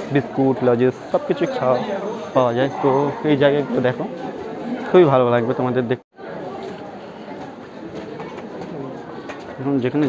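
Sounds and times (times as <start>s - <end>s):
faint chatter of people: 0.0s - 10.0s.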